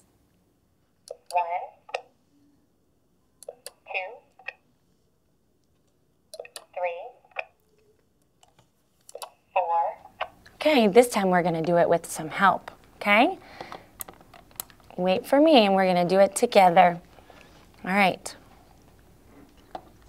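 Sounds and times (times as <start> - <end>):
high-pitched recorded voice message: 1.2 - 2.0, 3.6 - 4.4, 6.4 - 7.3, 9.5 - 10.1.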